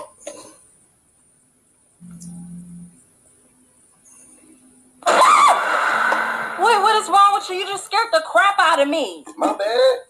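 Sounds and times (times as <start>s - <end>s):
woman screaming: 5.1s - 5.7s.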